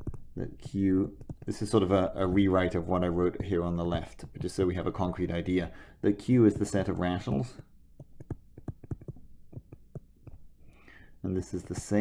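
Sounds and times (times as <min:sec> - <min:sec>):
stylus tapping on tablet screen: 0:00.0 - 0:05.4, 0:06.3 - 0:10.8
soft breath: 0:05.7 - 0:06.0, 0:10.6 - 0:11.2.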